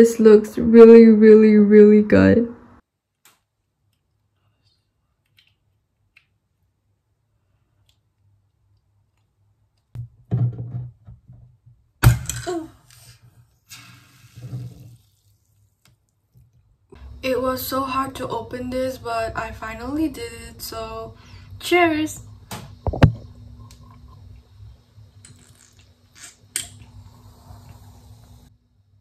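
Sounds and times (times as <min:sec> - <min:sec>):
fizz hissing: 0:13.0 - 0:15.8, 0:25.3 - 0:28.5.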